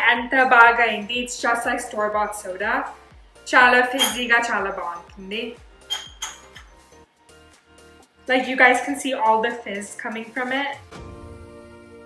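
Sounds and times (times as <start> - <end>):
quiet background music: 0.0 - 12.0
bottle clinking against glass: 4.0 - 4.3, 5.8 - 6.6.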